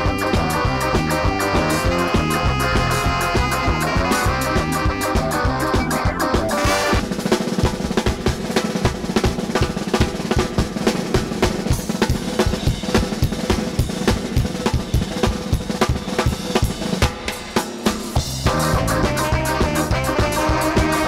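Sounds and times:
fast snare and bass drum beat: 0.0 - 21.0.

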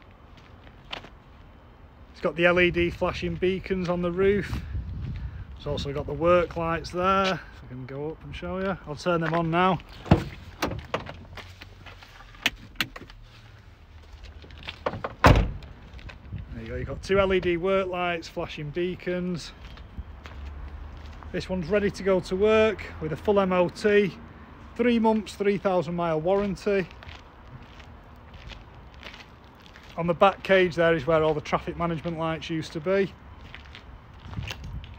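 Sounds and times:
soft footsteps: 19.5 - 21.4.

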